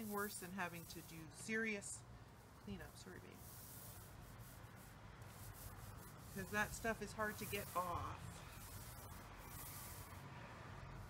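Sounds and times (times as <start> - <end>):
brush stroking wet paint: 0.0 - 1.7, 2.4 - 10.3
paint roller hissing: 0.0 - 1.7, 2.4 - 11.0
steady low hum: 0.0 - 11.0.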